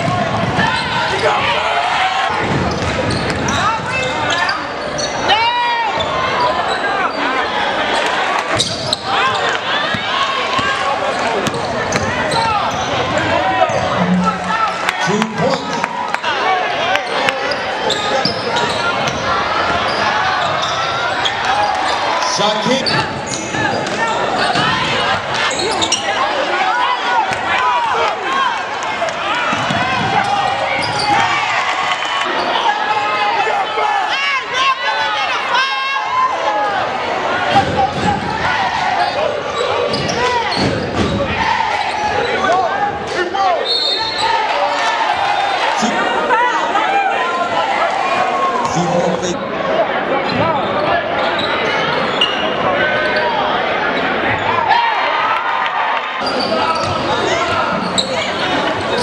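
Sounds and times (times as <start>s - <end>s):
crowd talking and shouting: 0.0s - 59.0s.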